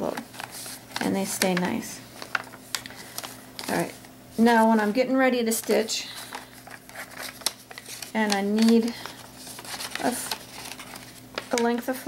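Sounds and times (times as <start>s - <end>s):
paper envelope rustling: 0.0s - 12.0s.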